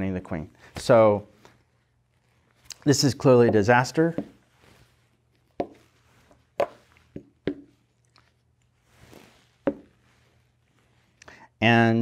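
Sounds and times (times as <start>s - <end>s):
chess pieces knocking on board: 5.6s - 5.8s, 6.6s - 7.7s, 9.7s - 9.9s.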